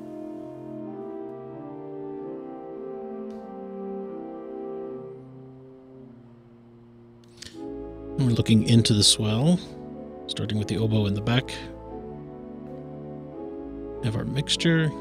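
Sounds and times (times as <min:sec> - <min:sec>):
pipe organ chords: 0:00.0 - 0:15.0.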